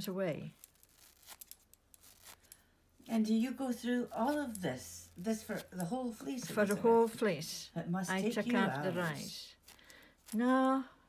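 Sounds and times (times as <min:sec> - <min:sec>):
wool fibres tearing: 0:00.0 - 0:07.6, 0:08.2 - 0:10.8.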